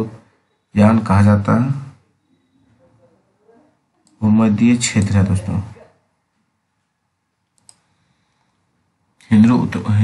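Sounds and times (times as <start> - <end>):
computer mouse clicks: 7.4 - 7.9.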